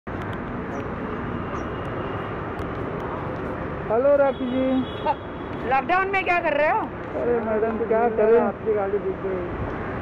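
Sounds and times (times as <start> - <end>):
traffic hum: 0.1 - 10.0.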